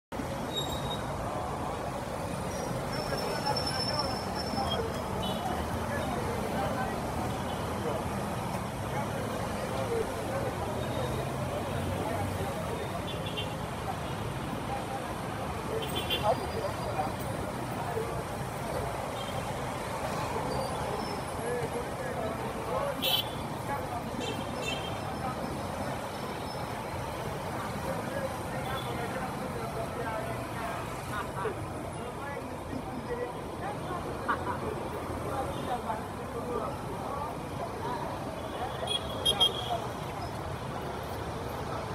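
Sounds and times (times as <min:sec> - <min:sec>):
motor traffic: 0:00.1 - 0:41.9
people talking: 0:01.2 - 0:41.9.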